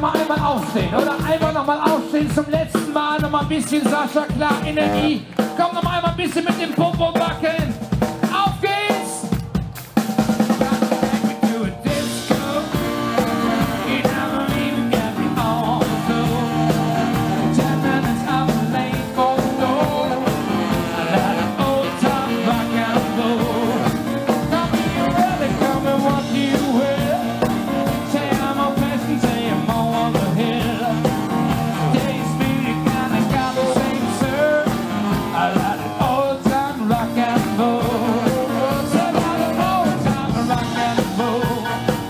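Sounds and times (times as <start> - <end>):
live rock band playing: 0.0 - 42.0
saxophone solo: 4.5 - 5.5, 11.9 - 35.9.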